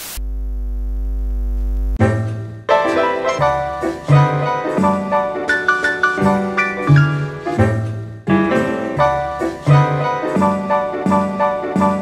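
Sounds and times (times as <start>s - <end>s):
deep electronic buzz: 0.0s - 2.0s
white noise static hiss: 0.0s - 2.0s.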